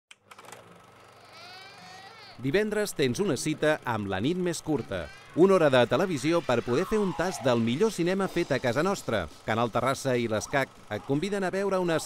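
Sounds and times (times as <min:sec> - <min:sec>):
infant crying: 0:04.7 - 0:07.6.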